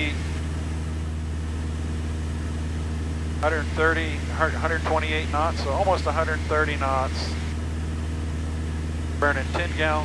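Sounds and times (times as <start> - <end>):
airplane engine and propeller drone: 0.0 - 10.0.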